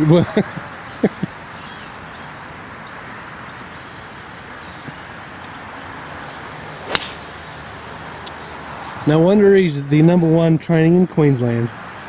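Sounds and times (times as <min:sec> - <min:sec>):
outdoor background hiss: 0:00.0 - 0:12.0
golf club striking ball: 0:06.8 - 0:07.4.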